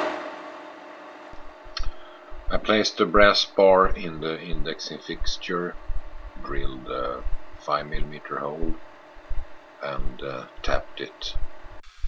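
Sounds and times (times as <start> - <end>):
low thumps: 1.4 - 11.8
drill spindle motor hum: 5.4 - 12.0.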